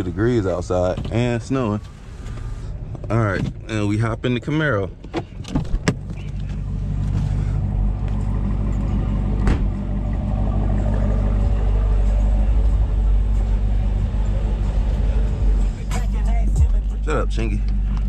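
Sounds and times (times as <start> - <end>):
car engine idling: 0.0 - 18.0
car door shutting: 5.0 - 7.4, 9.3 - 9.9.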